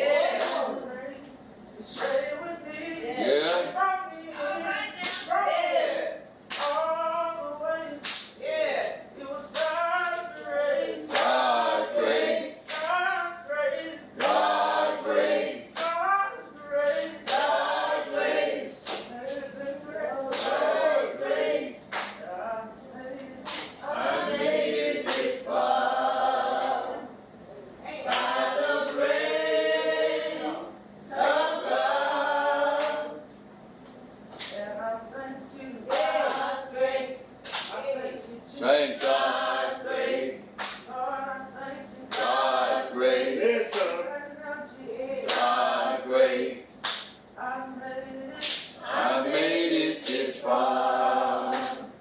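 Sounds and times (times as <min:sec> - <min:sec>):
unaccompanied voices chanting: 0:00.0 - 0:33.3, 0:34.4 - 0:52.0.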